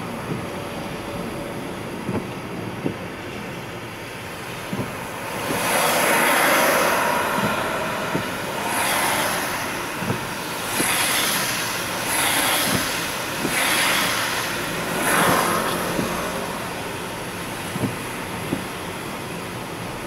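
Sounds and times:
tyres hissing on wet road: 0.0s - 20.0s
windscreen wipers swishing: 0.0s - 20.0s.

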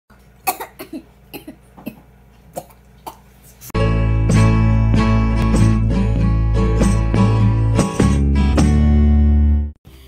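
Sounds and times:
music: 3.8s - 9.8s.

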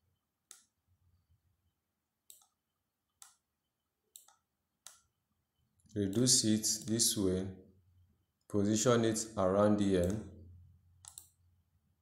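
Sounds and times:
computer mouse clicks: 0.4s - 0.8s, 2.3s - 3.5s, 4.1s - 5.1s, 5.8s - 7.2s, 11.0s - 11.4s.

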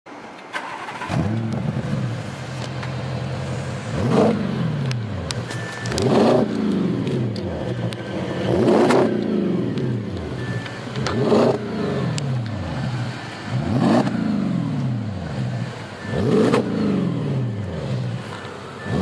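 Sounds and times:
car engine revving and idling: 0.6s - 19.0s.

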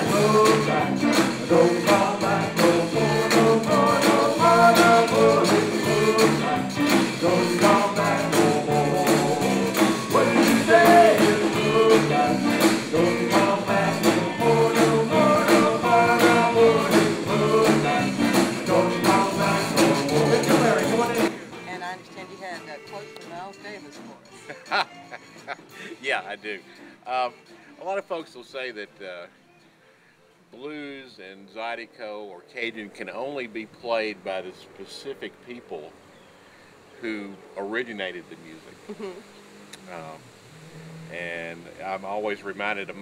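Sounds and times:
man singing: 0.0s - 21.6s
zydeco band playing: 0.0s - 29.8s, 38.4s - 43.0s.

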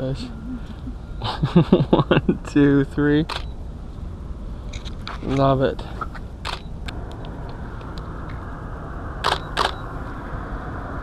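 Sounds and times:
low background rumble: 0.0s - 11.0s
camera shutter clicking: 3.3s - 3.5s, 6.4s - 6.7s, 9.2s - 9.8s.

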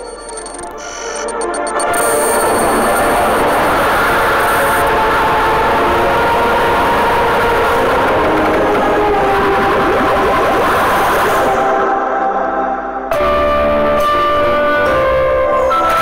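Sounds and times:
dense droning noise effect: 0.0s - 13.0s.

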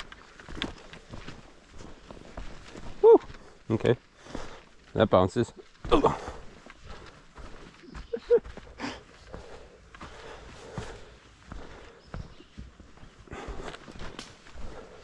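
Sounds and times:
footsteps on leafy dirt trail: 0.0s - 15.0s.

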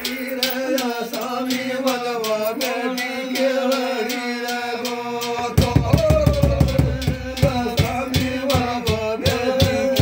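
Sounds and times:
metal hand cymbals clashing: 0.0s - 5.5s
men singing: 0.0s - 10.0s
barrel drum beaten with sticks: 5.2s - 10.0s.

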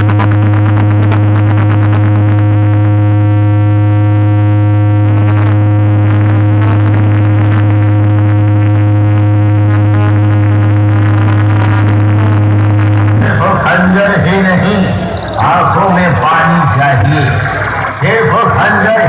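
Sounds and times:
deep synthesizer bass tone: 0.0s - 19.0s.

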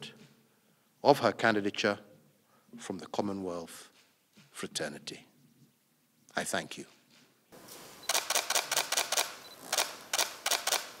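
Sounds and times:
camera shutters firing: 7.7s - 11.0s.

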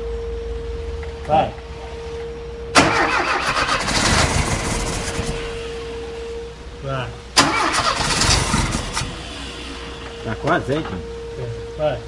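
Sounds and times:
engine starter cranking: 2.8s - 5.4s, 7.4s - 9.2s.

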